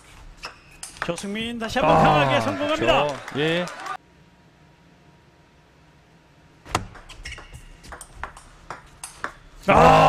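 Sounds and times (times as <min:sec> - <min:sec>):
table tennis ball clicks: 0:06.8 - 0:09.4.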